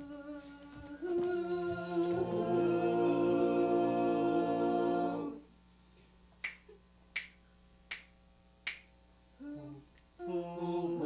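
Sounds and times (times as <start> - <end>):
finger snaps: 6.0 - 8.9
humming voices: 9.4 - 11.0.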